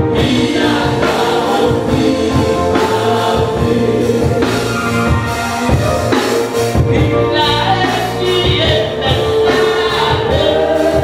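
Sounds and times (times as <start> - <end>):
choir singing gospel song: 0.0 - 11.0
instrumental backing with bass: 0.0 - 11.0.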